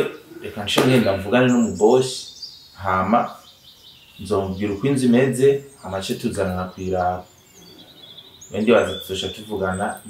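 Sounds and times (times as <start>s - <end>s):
conversational speech: 0.0s - 3.4s, 4.2s - 7.3s, 8.5s - 10.0s
faint bird chirps: 0.0s - 10.0s.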